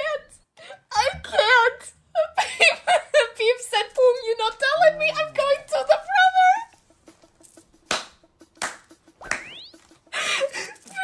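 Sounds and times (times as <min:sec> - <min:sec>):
sharp hand smacks: 0:07.8 - 0:09.6.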